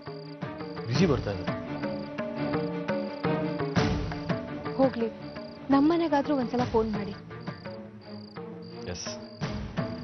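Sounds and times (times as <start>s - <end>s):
crickets chirping: 0.0s - 10.0s
soft background music: 0.0s - 10.0s.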